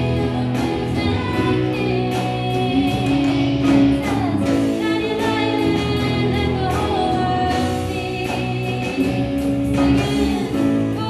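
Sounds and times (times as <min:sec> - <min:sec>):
band playing guitars and keyboard: 0:00.0 - 0:11.0
voices singing together: 0:00.0 - 0:11.0.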